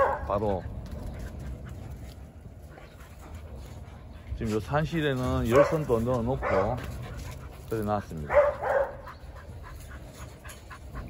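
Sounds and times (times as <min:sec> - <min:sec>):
dogs moving about: 0:00.0 - 0:11.0
steady low rumble: 0:00.0 - 0:11.0.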